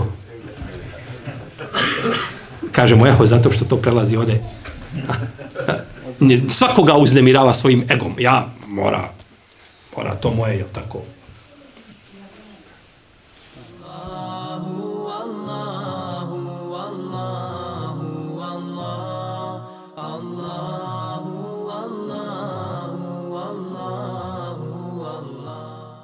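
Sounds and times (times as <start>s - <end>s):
chanted vocal music: 13.4s - 26.0s.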